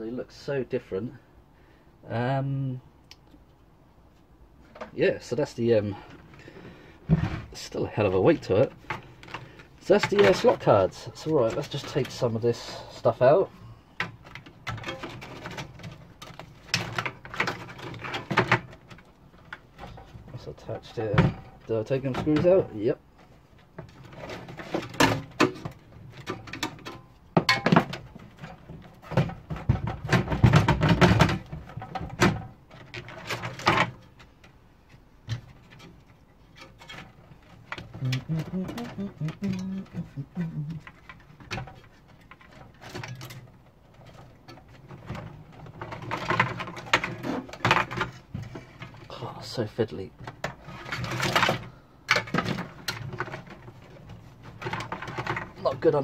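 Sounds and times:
metal parts clicking and rattling: 8.0 - 13.2, 14.0 - 34.6, 35.2 - 49.1.

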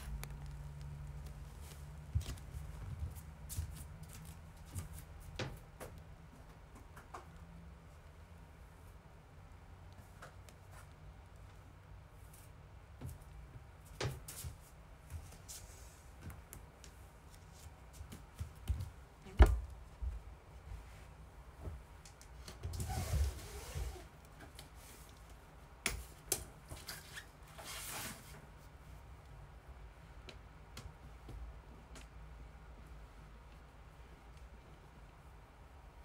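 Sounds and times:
low room hum: 0.0 - 36.0.

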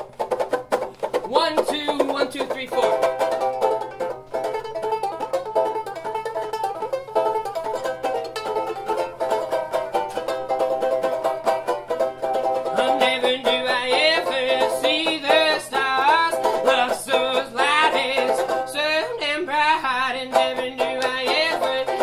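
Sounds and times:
banjo ukulele strumming: 0.0 - 22.0
person singing: 1.2 - 3.3, 12.6 - 22.0.

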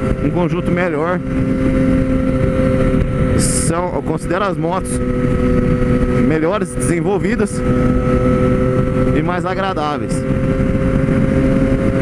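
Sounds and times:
motorcycle engine cruising: 0.0 - 12.0
wind rushing: 0.0 - 12.0.

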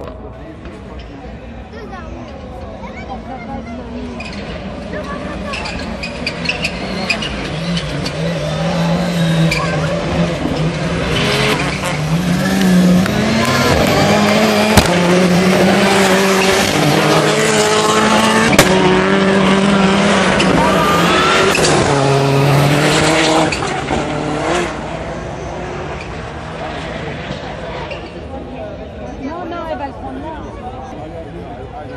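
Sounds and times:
race cars at full throttle: 0.0 - 31.9.

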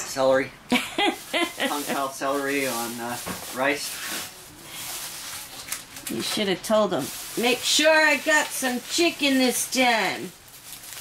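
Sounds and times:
plastic bag rustling: 1.0 - 11.0.

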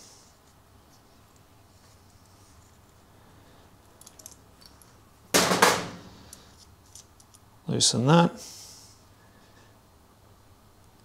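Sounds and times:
small metal parts clicking: 3.8 - 5.0.

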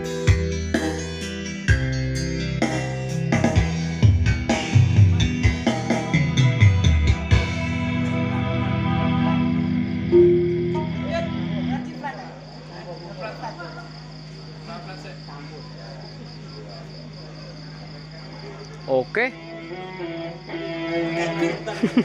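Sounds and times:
band chord on guitar and keyboard: 4.7 - 12.4
sound system hum: 10.1 - 12.5
faint voices: 11.0 - 19.2.

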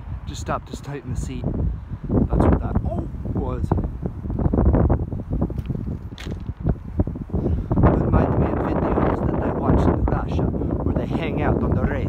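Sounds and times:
wind buffeting microphone: 0.0 - 12.0
footsteps on gravel: 5.5 - 6.7.

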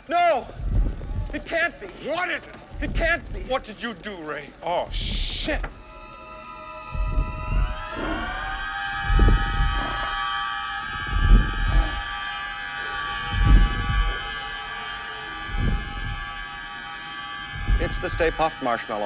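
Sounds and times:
deep low thuds: 0.4 - 6.0, 6.8 - 18.6.

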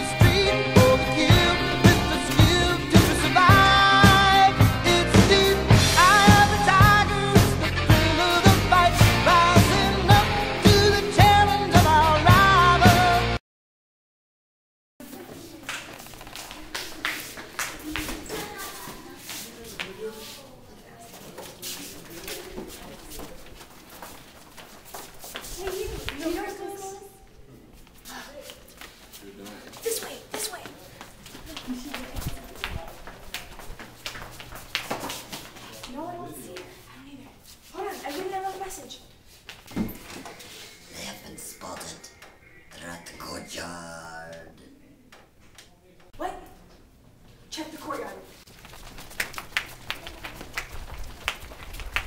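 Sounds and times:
footsteps hurrying on hallway floor: 15.0 - 20.4, 21.1 - 26.8, 27.8 - 36.8, 48.4 - 52.0
person making wordless vocal sounds: 40.8 - 44.8.

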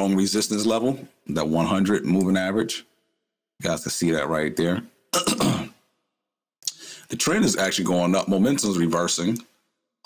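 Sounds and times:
man clearing his throat: 5.2 - 5.8.

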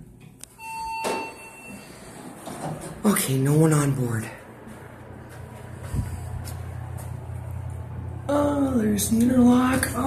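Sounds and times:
elevator low hum: 0.0 - 10.0.

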